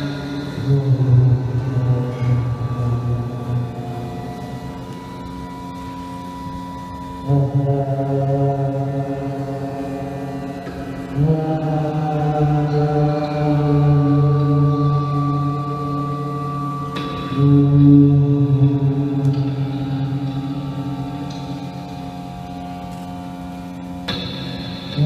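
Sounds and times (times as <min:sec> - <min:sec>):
layered low drone tones: 0:00.0 - 0:25.0.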